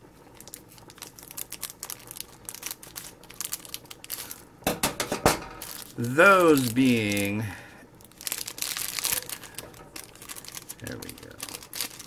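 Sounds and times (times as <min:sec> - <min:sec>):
plastic sachet crinkling: 0:00.3 - 0:04.6, 0:05.6 - 0:12.0.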